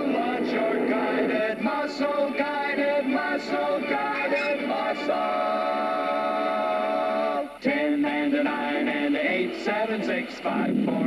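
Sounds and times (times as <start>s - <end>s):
man singing cartoon jingle: 7.6s - 11.0s.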